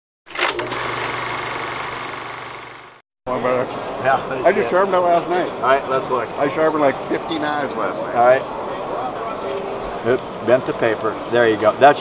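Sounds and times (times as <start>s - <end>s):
rapid mechanical rattle: 0.3s - 3.0s.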